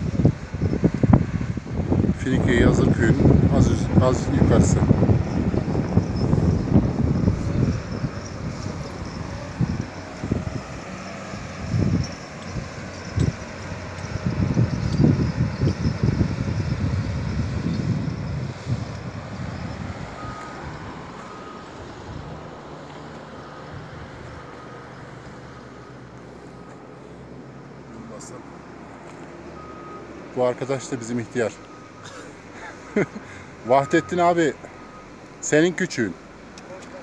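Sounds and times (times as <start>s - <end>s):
wind buffeting microphone: 0.0s - 22.7s
distant machinery engine running: 0.3s - 35.3s
reversing alarm beeping: 3.6s - 22.2s, 29.5s - 32.3s, 32.9s - 35.2s.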